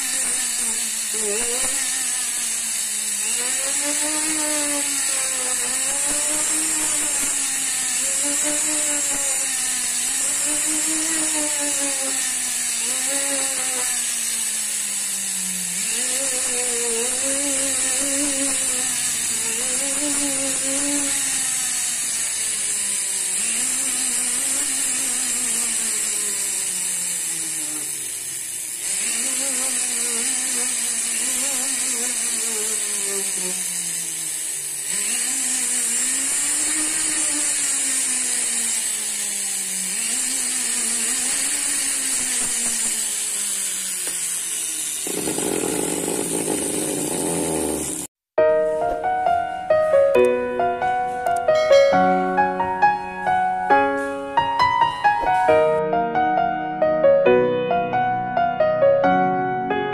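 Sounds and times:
rotary tool grinding metal: 0:00.0 - 0:48.2.

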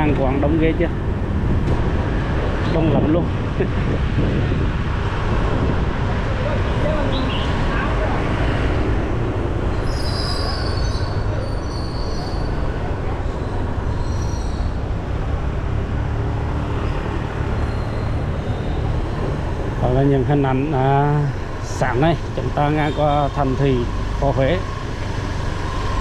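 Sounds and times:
wind on microphone: 0:00.8 - 0:11.4
high-pitched squeals: 0:16.8 - 0:19.2.

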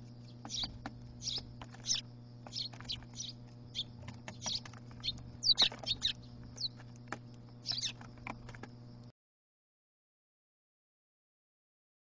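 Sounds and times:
sparrows chirping: 0:00.0 - 0:09.0
steady low hum: 0:00.0 - 0:09.1.

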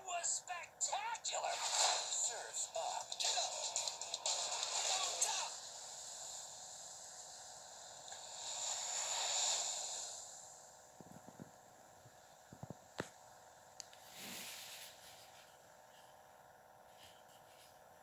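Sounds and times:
cartoon voices: 0:00.0 - 0:01.6, 0:04.8 - 0:05.6.

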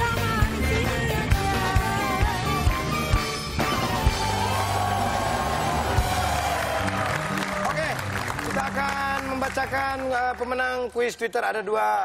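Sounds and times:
theme music: 0:00.0 - 0:11.2
audience cheering and clapping: 0:03.6 - 0:10.9.

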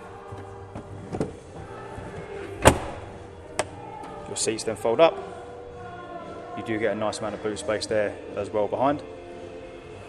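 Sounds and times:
background music held tones: 0:00.0 - 0:10.0
seat latch clicks: 0:02.6 - 0:03.7
seat latch clunk: 0:02.6 - 0:03.7.

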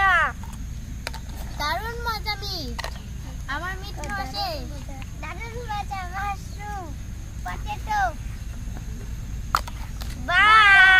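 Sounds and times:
young children talking and exclaiming: 0:00.0 - 0:00.5, 0:01.4 - 0:10.9
steady low hum: 0:00.0 - 0:10.9.

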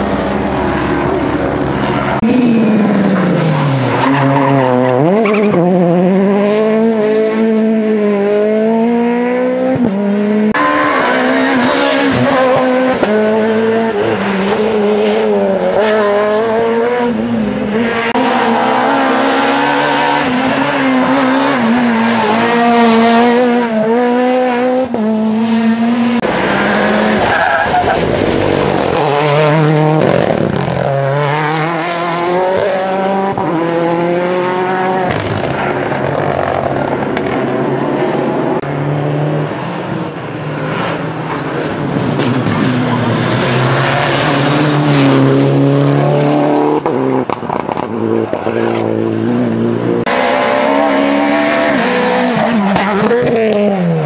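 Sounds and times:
rally car engines revving: 0:00.0 - 0:54.0.

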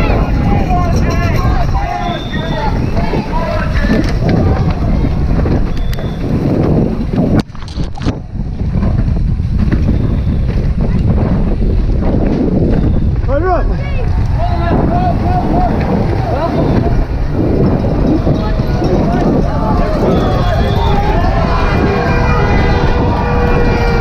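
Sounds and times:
spectators shouting: 0:00.0 - 0:06.2, 0:13.6 - 0:24.0
bike tyres rattling on dirt: 0:00.0 - 0:24.0
wind rushing over camera: 0:00.0 - 0:24.0.

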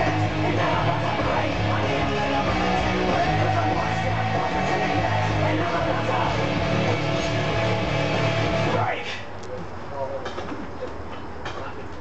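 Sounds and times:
guitar rock music: 0:00.0 - 0:08.9.

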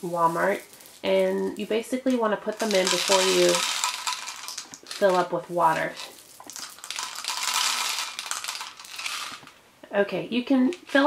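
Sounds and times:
plastic beads clattering into bottle: 0:00.0 - 0:09.6.

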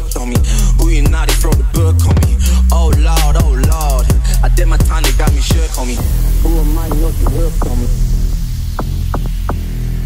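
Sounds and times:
deep bass drone: 0:00.4 - 0:10.0.

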